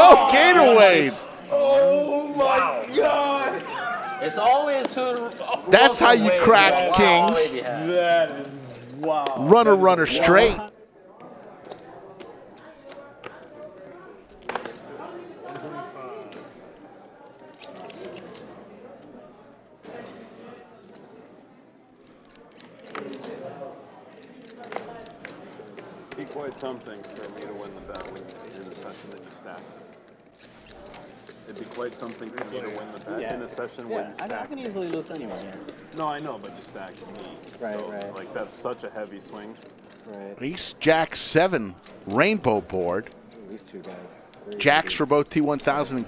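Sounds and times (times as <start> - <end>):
murmur of voices: 0.0 - 20.9, 22.4 - 46.0.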